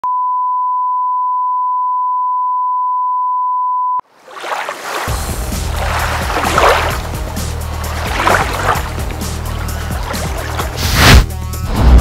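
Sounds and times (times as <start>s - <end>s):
steady test tone beep: 0.0s - 4.0s.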